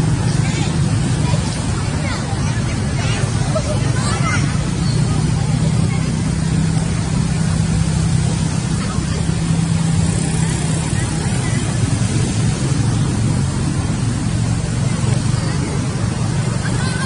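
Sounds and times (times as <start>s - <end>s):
motor engine humming: 0.0s - 17.0s.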